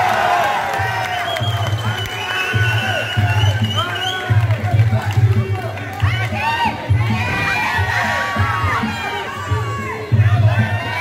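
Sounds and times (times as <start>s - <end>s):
crowd shouting and cheering: 0.0s - 11.0s
music with pulsing bass beat: 2.6s - 11.0s.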